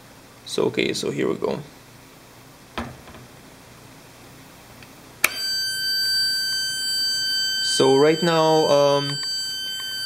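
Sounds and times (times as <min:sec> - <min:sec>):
high-pitched oscillator whine: 0:05.3 - 0:10.0.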